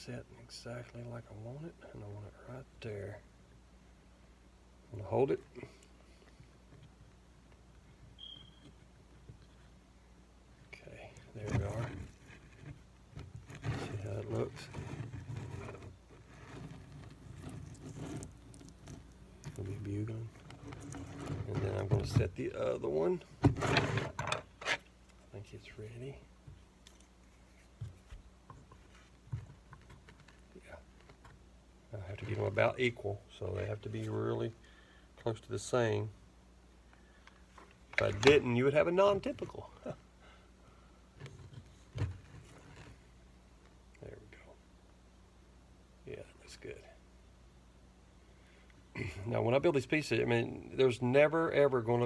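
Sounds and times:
low steady hum: 0.0s - 52.0s
faint handling sounds: 4.9s - 36.2s, 36.8s - 44.6s.

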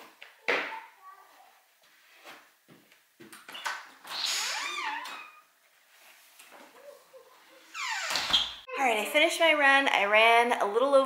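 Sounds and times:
door creaking open: 3.4s - 5.5s, 7.7s - 8.8s.

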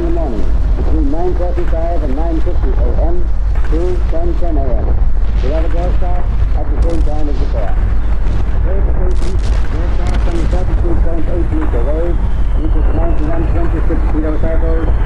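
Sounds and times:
person speaking like old radio: 0.0s - 4.8s, 5.4s - 7.8s, 8.7s - 14.9s
deep low drone rumble: 0.0s - 15.0s.

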